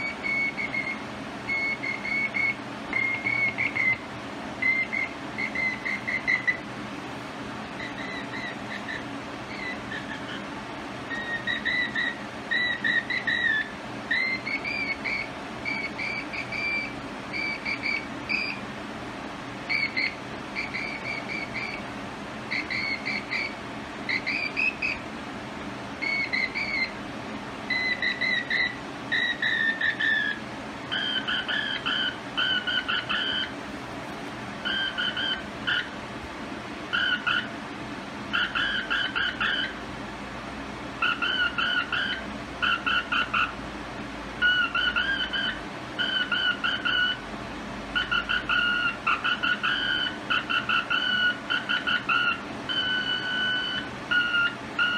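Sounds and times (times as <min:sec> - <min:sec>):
morse code beeps: 0:00.0 - 0:04.0, 0:04.6 - 0:06.6, 0:34.7 - 0:35.8
steady background hiss: 0:00.0 - 0:54.9.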